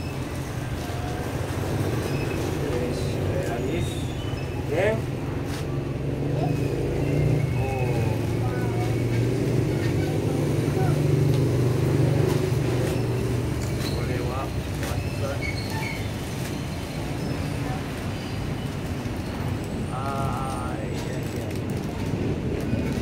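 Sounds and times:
vehicle engine rumble: 0.0s - 23.0s.

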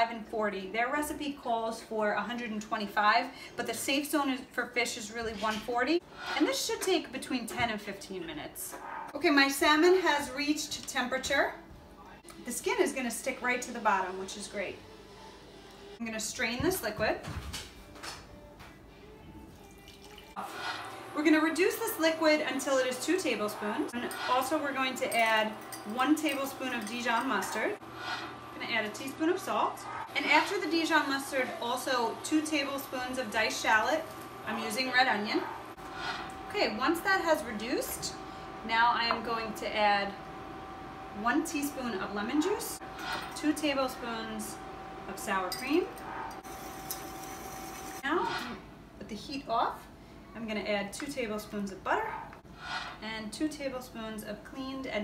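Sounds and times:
induction cooktop humming: 19.0s - 55.0s
liquid trickling through strainer: 19.5s - 21.0s.

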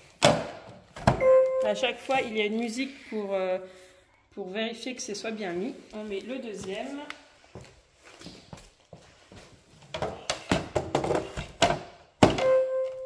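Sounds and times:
plastic parts knocking and rattling: 9.9s - 12.5s.

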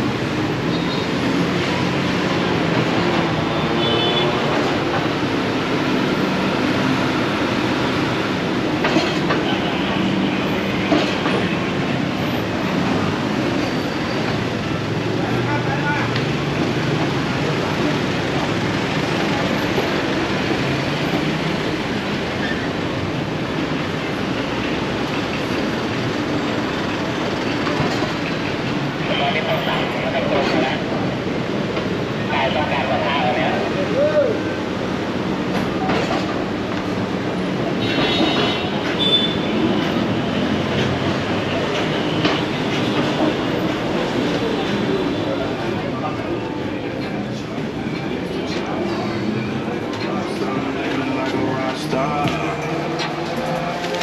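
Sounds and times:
traffic of cars and motorbikes: 0.0s - 54.0s
passers-by talking: 28.9s - 34.7s, 40.5s - 54.0s.

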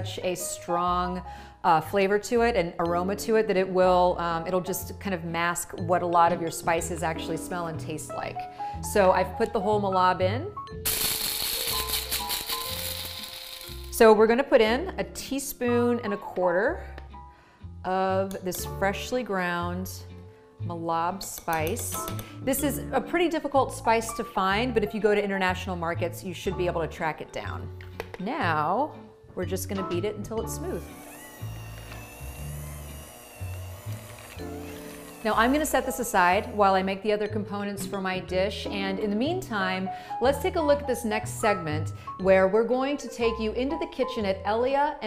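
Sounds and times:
background music: 0.0s - 45.0s
electric coffee grinder grinding seeds: 10.9s - 14.0s, 30.6s - 36.9s
electric hand mixer whining: 10.9s - 14.0s, 30.6s - 37.0s.

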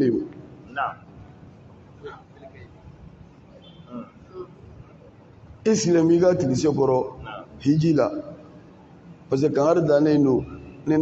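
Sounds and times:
faint background voices: 1.9s - 5.5s.

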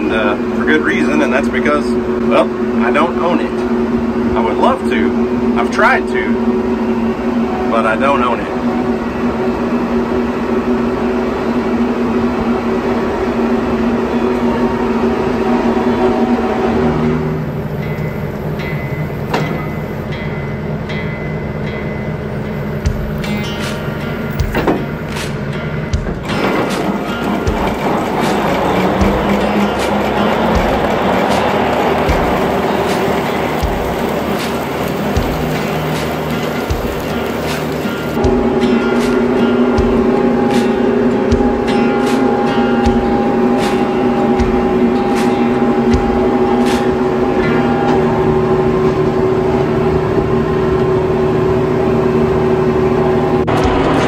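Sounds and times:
background music: 15.1s - 49.6s, 53.0s - 54.0s
tractor engine running: 22.2s - 54.0s.

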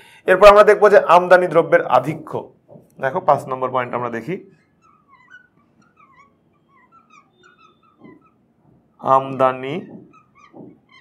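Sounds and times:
marker squeaking on glass: 3.2s - 11.0s.

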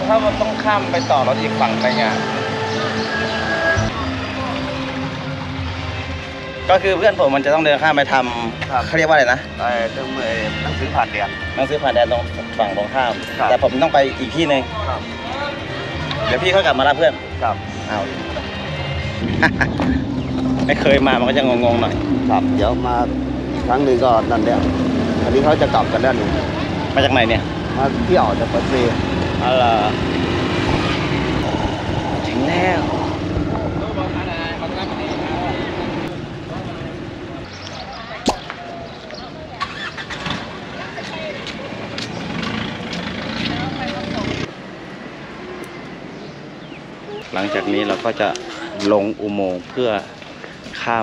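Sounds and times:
man talking: 0.0s - 3.0s, 20.6s - 30.0s, 47.2s - 51.0s
people's voices: 0.0s - 44.6s, 46.8s - 51.0s
vehicle engine humming: 0.0s - 49.6s.

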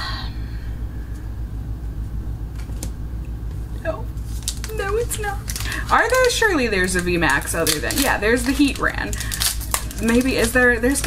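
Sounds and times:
steady low hum: 0.0s - 11.0s
trading cards clicking and rustling: 4.2s - 11.0s.

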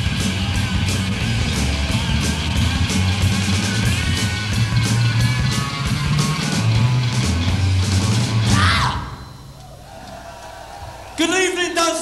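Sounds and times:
heavy metal band: 0.0s - 9.3s.

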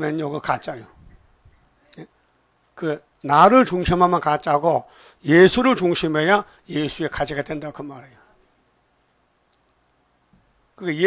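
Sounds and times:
man's voice: 2.8s - 8.2s.

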